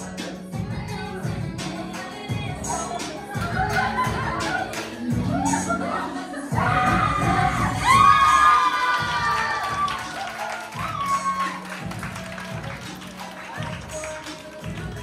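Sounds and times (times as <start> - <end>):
dance music: 0.0 - 15.0
children cheering and shouting: 3.4 - 11.9
clapping: 8.6 - 15.0.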